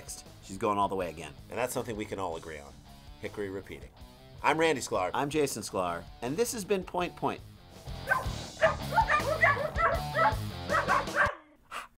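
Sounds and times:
dog barking: 0:08.0 - 0:11.9.

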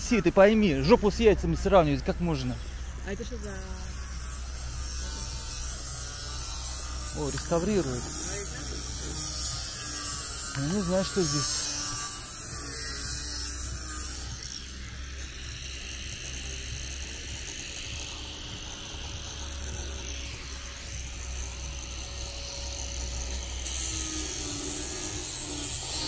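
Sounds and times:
steady low rumble: 0:00.0 - 0:10.6
angle grinder sanding wood: 0:00.0 - 0:26.0.

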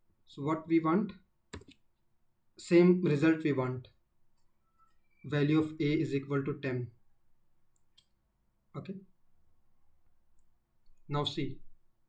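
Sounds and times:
computer mouse clicks: 0:01.5 - 0:01.8.

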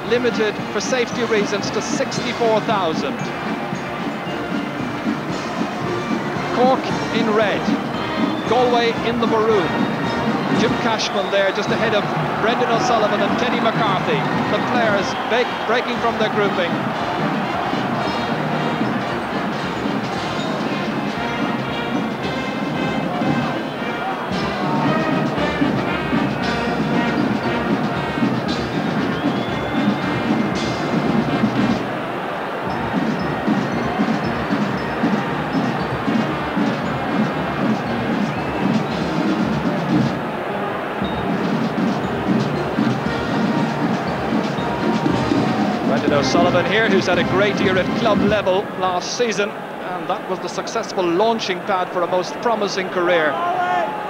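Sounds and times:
brass marching band playing: 0:00.0 - 0:48.8
stadium crowd noise: 0:00.0 - 0:54.0.

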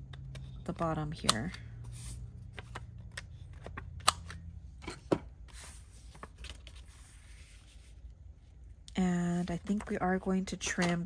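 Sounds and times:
paper rustling: 0:05.5 - 0:08.0.

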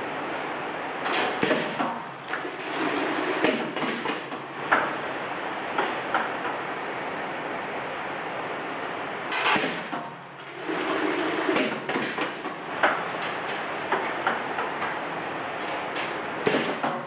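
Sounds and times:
pneumatic cylinders clacking: 0:01.0 - 0:05.0, 0:09.3 - 0:10.2, 0:10.8 - 0:14.8, 0:15.6 - 0:17.0.

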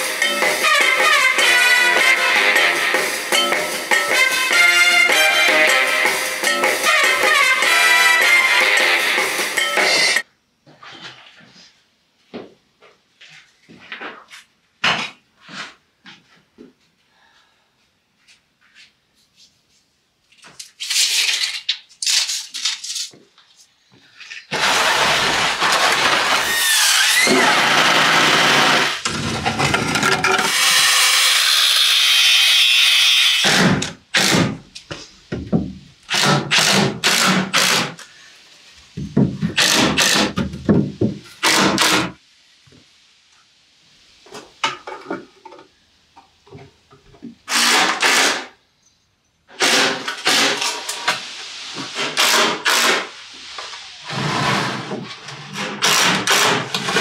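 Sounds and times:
power tool on wood: 0:24.5 - 0:34.5.

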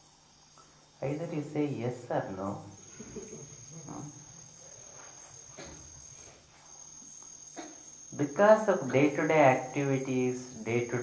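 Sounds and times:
crickets trilling: 0:00.0 - 0:11.0
low room hum: 0:00.0 - 0:11.0.

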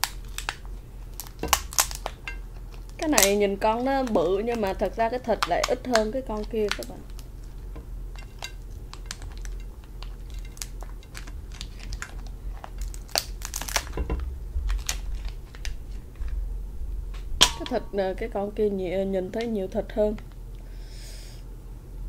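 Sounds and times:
lobster shell cracking: 0:00.0 - 0:16.4, 0:17.4 - 0:18.0
steady low hum: 0:00.0 - 0:22.0.

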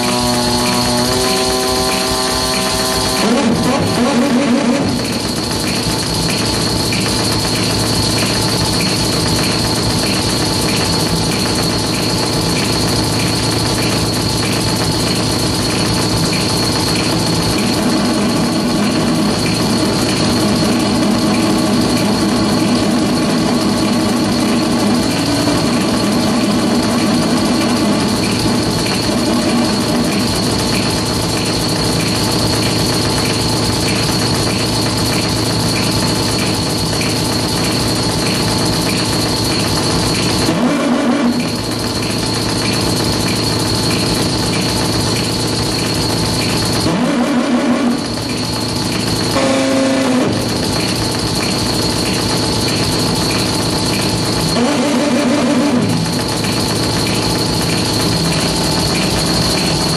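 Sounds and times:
harsh electronic noise buzzing: 0:00.0 - 0:59.9
steady high whine: 0:00.0 - 0:59.9.

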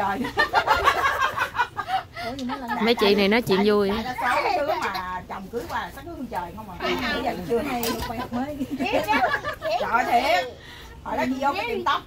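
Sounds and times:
women laughing and chatting: 0:00.0 - 0:12.0.

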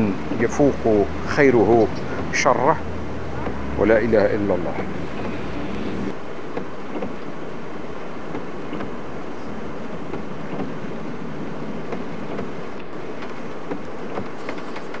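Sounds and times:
car running: 0:00.0 - 0:06.2
tyres on wet tarmac: 0:00.0 - 0:15.0.

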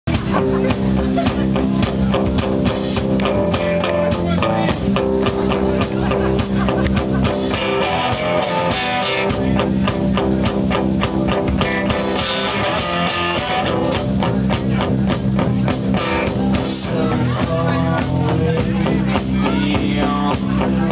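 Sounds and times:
drum kit beat: 0:00.0 - 0:20.9
electric guitar through amplifier: 0:00.1 - 0:20.9.

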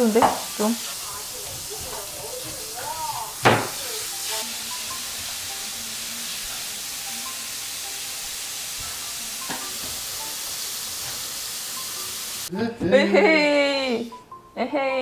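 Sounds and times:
steady high hiss: 0:00.0 - 0:09.3
soft background music: 0:00.0 - 0:15.0.

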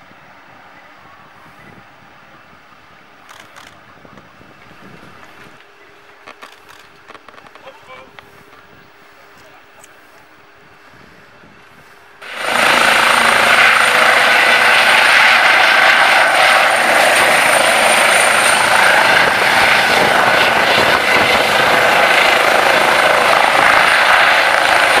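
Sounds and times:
helicopter turbine and rotor: 0:01.4 - 0:25.0.

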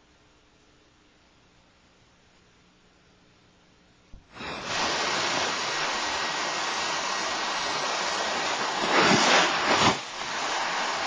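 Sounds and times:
snow and ice sliding off roof: 0:04.4 - 0:11.0.

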